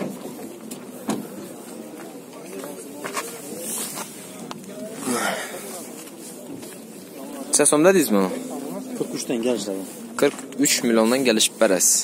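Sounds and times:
faint background murmur: 0:00.0 - 0:12.0.

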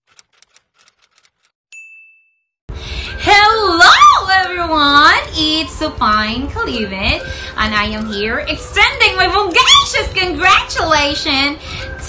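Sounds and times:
bright chime ding: 0:01.7 - 0:02.5.

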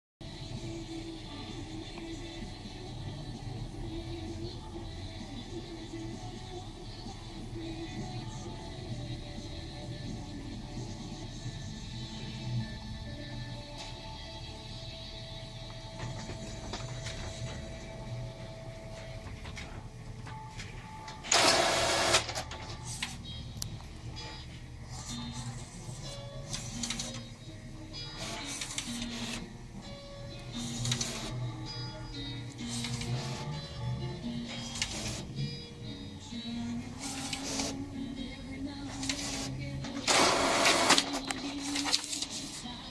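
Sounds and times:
background music: 0:00.2 - 0:42.9.

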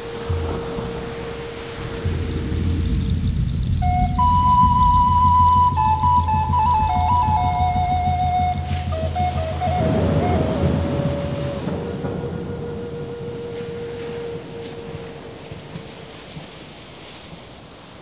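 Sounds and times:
flute melody: 0:00.0 - 0:02.5, 0:03.8 - 0:16.4
low drone: 0:00.0 - 0:16.0.

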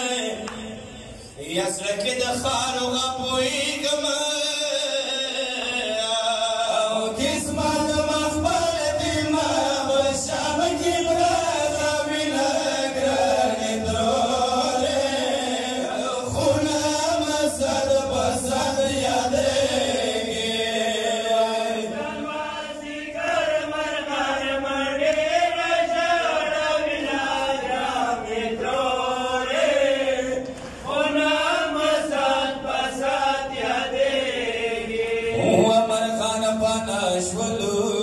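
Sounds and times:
men chanting a lament: 0:00.0 - 0:38.0.

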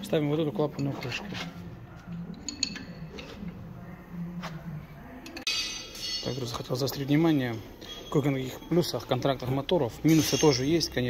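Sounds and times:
light metallic clinks: 0:02.4 - 0:03.3, 0:05.3 - 0:06.8, 0:10.0 - 0:11.0.

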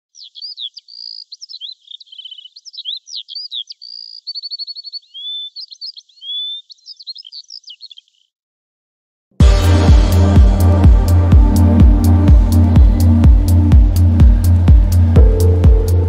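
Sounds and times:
songbird singing: 0:00.0 - 0:08.4.

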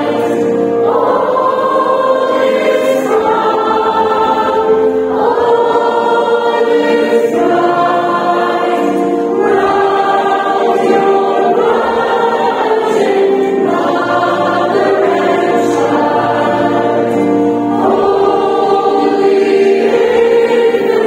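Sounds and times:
mixed choir singing a carol: 0:00.0 - 0:21.0.

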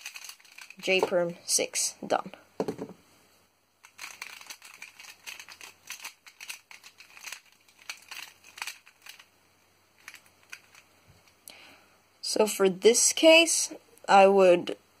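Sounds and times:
plastic puzzle clicks and clacks: 0:00.0 - 0:01.2, 0:03.8 - 0:09.3, 0:10.0 - 0:10.8.

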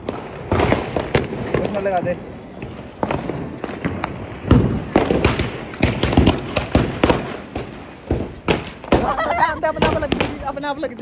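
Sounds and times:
firecrackers bursting: 0:00.0 - 0:11.0.

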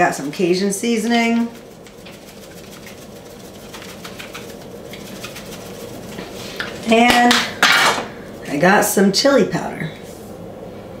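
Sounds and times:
seasoning shaker ticking: 0:00.3 - 0:07.3.

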